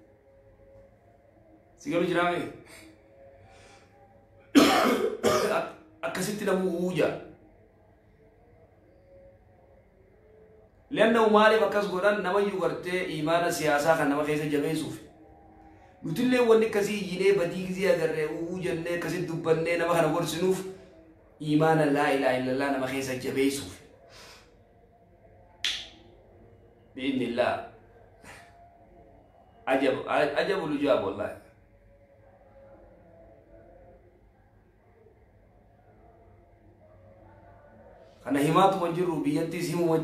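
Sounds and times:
faint breath: 0:02.6 - 0:04.2, 0:24.0 - 0:24.8, 0:28.1 - 0:28.8
man clearing his throat: 0:04.5 - 0:05.8.

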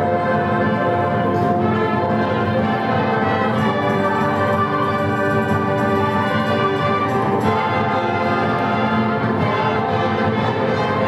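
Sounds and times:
symphonic band playing chords: 0:00.0 - 0:11.0.

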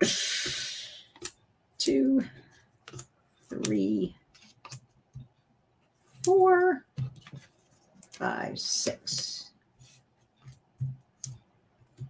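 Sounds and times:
fingernail clicks and taps on paper: 0:02.8 - 0:03.1, 0:04.3 - 0:05.4.

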